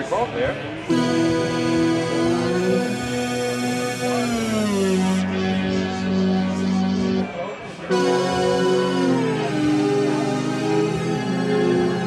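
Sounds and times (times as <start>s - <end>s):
synthesizer chord tones: 0.9s - 12.0s.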